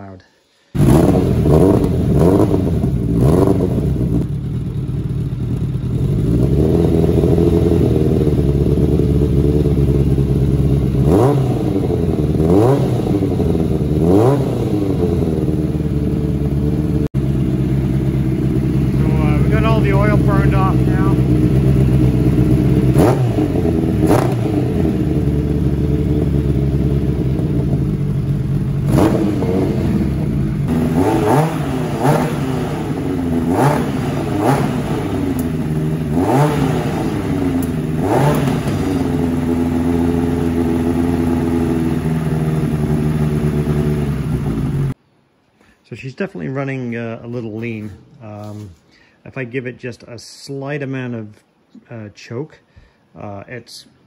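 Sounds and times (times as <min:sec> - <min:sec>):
motorcycle engine idling and revving: 0:00.7 - 0:45.0.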